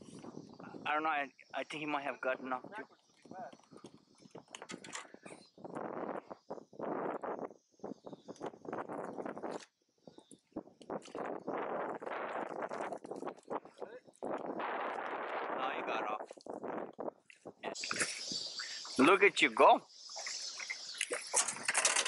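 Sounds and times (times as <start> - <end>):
water splashing: 11.0 - 22.0.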